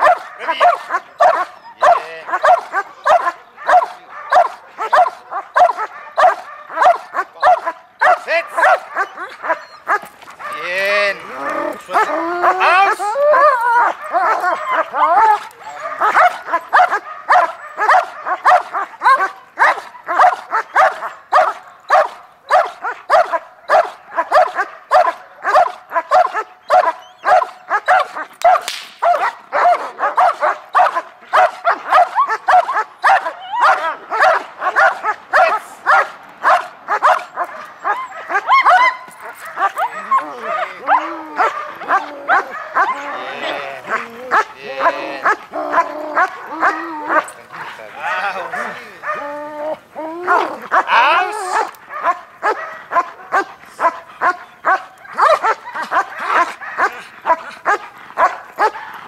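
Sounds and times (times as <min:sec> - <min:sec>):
dog barking: 0:00.0 - 0:10.8, 0:11.8 - 0:49.4, 0:50.3 - 0:59.0
dog whining yelps: 0:00.0 - 0:58.8.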